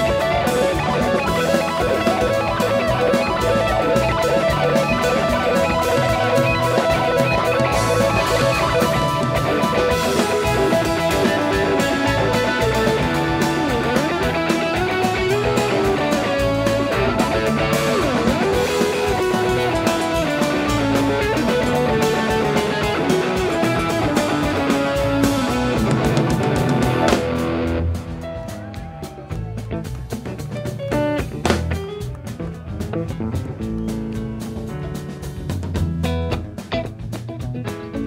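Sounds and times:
electric guitar lead: 0.0s - 38.0s
rock band playing: 0.0s - 38.0s.

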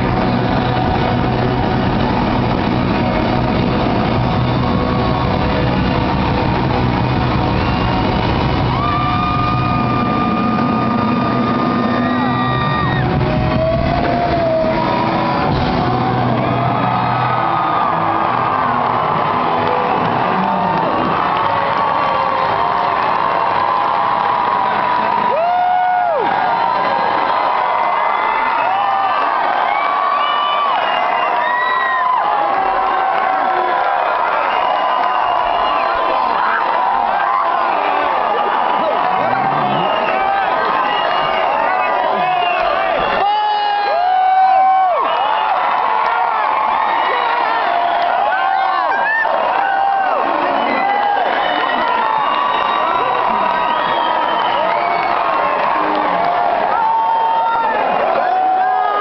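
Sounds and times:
live rock band playing: 0.0s - 17.3s
crowd cheering and shouting: 0.0s - 59.0s.

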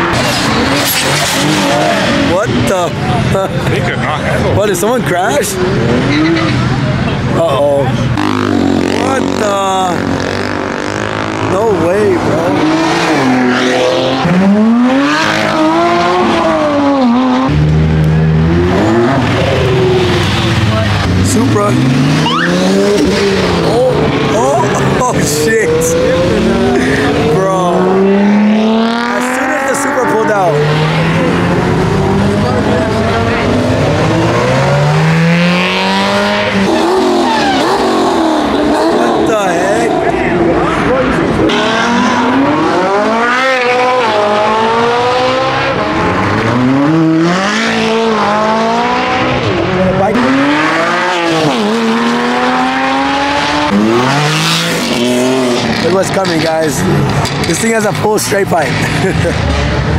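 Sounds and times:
performance cars accelerating past: 0.0s - 59.9s.

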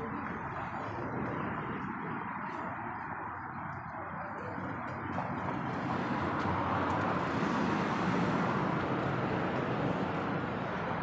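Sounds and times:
car passing by: 5.2s - 11.0s.

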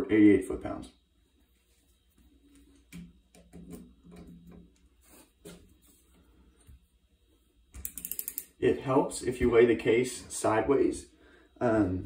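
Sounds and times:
ratchet clicks: 7.8s - 8.5s
torque wrench clicks and taps: 7.8s - 8.5s.

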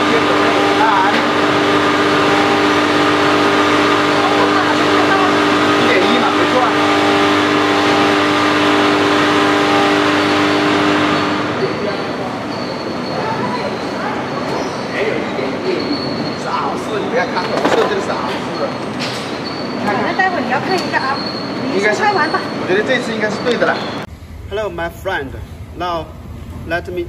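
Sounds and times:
packing machine humming: 0.0s - 11.6s, 24.1s - 27.0s.

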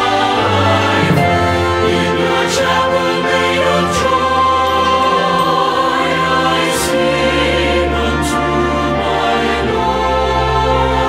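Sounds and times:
choir singing: 0.0s - 11.0s
instrumental accompaniment: 0.0s - 11.0s.

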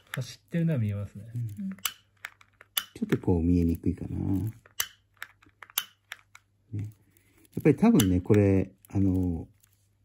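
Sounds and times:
piezo igniter snapping: 1.7s - 3.2s, 4.7s - 6.5s.

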